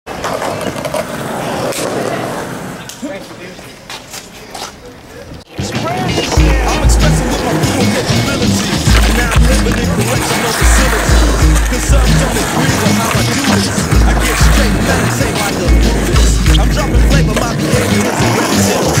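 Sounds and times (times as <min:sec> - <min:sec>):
skateboard clacks: 0:00.1 - 0:03.1, 0:05.6 - 0:19.0
skateboard wheels rolling on concrete: 0:00.1 - 0:19.0
hip-hop beat with heavy bass: 0:05.5 - 0:19.0.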